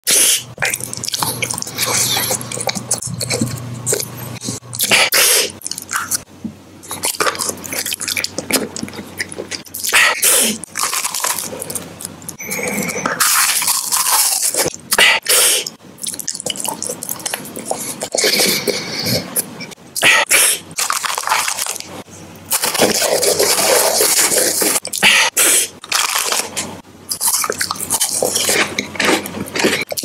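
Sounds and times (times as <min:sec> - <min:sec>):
mouth crunching snack bars: 0:06.9 - 0:12.4, 0:13.2 - 0:18.8, 0:20.0 - 0:21.9, 0:22.5 - 0:30.0
plastic packaging crinkling: 0:20.8 - 0:24.8.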